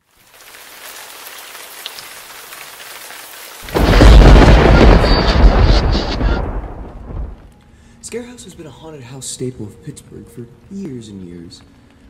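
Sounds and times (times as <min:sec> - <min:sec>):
rain falling: 0:00.0 - 0:07.6
loud thunder clap: 0:03.6 - 0:07.5.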